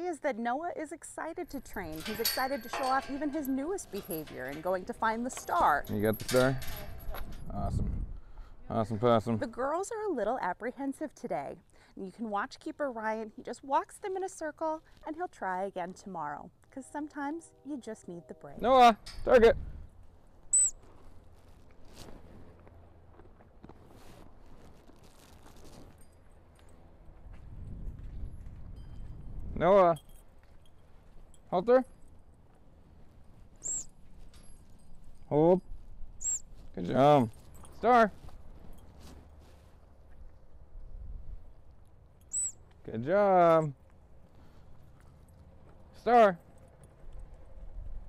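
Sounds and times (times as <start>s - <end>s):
wind rumble on microphone: 6.2s - 8.6s, 19.1s - 20.0s, 27.2s - 29.8s, 40.6s - 41.6s, 47.1s - 48.0s
high-pitched chirp: 20.5s - 20.8s, 33.6s - 33.9s, 36.2s - 36.4s, 42.3s - 42.6s
footsteps on dirt: 20.7s - 29.3s.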